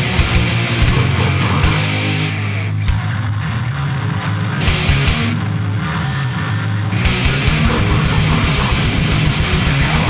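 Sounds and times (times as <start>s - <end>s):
distorted guitars: 0.0s - 10.0s
fast drumming: 7.1s - 10.0s.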